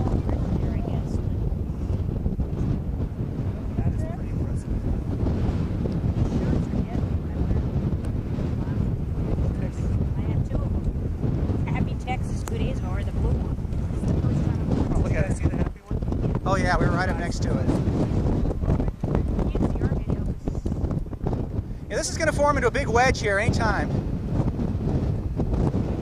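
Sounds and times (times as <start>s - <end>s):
gusty wind buffeting microphone: 0.0s - 26.0s.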